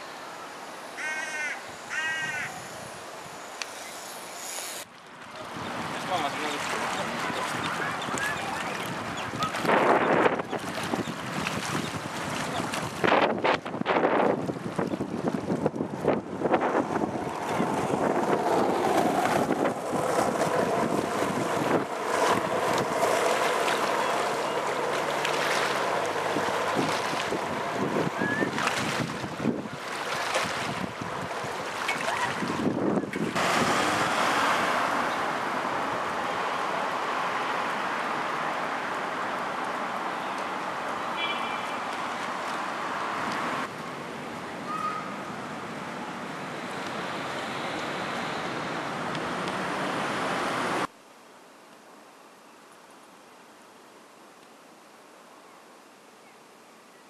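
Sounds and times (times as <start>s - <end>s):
wind buffeting microphone: 5.5s - 34.3s.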